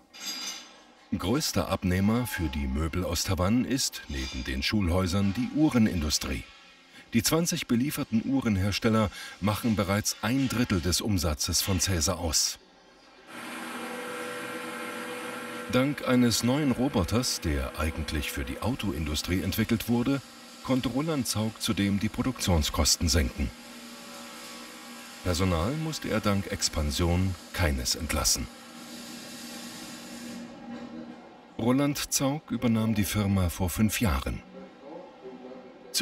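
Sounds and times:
machine hum with hiss: 5.4 - 10.8, 12.7 - 31.5.

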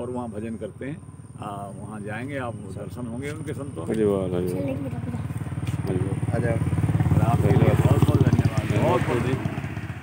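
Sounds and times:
voices talking: 0.0 - 9.7
low pulsing vehicle engine: 0.0 - 10.0.

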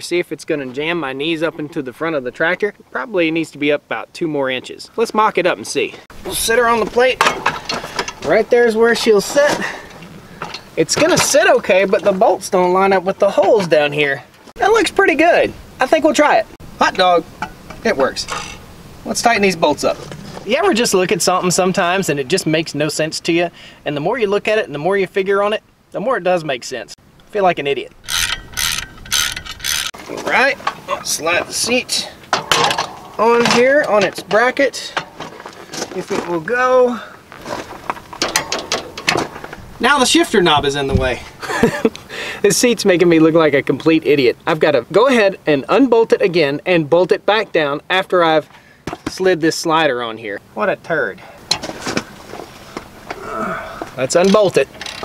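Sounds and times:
ratchet wrench clicking: 28.0 - 29.9.

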